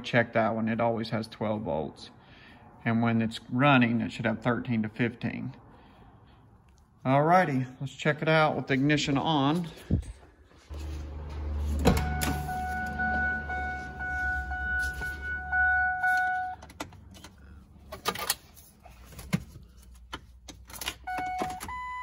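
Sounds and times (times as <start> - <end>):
low hum: 10.6 - 17.8
electronic warning tone: 10.7 - 16.6.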